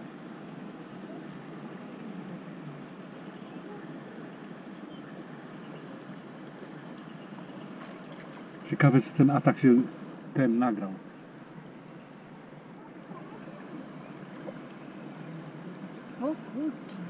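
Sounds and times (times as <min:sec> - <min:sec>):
flowing water rushing: 0:00.0 - 0:10.3, 0:12.3 - 0:17.0.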